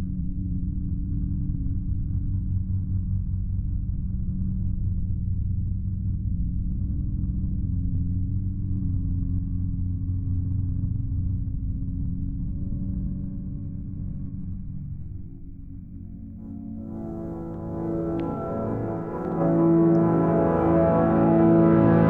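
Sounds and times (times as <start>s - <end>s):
deep bass drone: 0.0s - 22.0s
low rumble: 0.0s - 22.0s.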